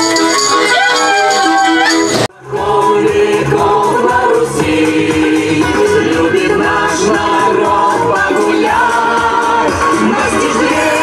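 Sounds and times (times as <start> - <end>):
group singing with music: 0.1 - 11.0
folk ensemble singing: 2.3 - 11.0.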